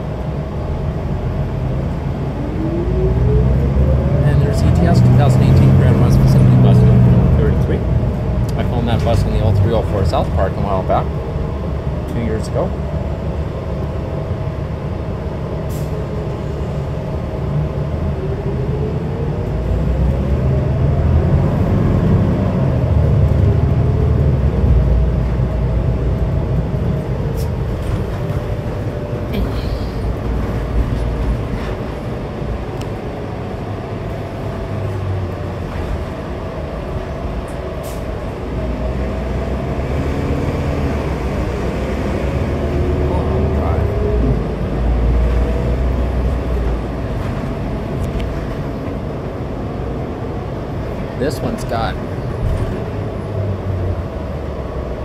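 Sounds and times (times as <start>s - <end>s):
bus engine rumble: 0.0s - 55.0s
drivetrain whine: 0.0s - 55.0s.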